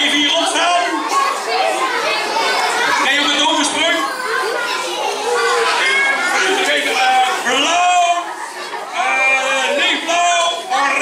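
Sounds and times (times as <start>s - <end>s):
children shouting and talking: 0.0s - 11.0s.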